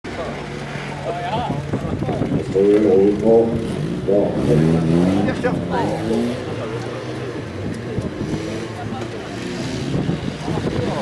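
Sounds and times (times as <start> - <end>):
car engine running: 0.1 - 11.0
people talking: 0.1 - 11.0.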